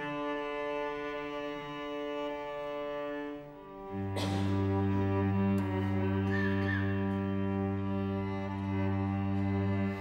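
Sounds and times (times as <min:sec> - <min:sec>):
cello and viola bowed notes: 0:00.0 - 0:10.0.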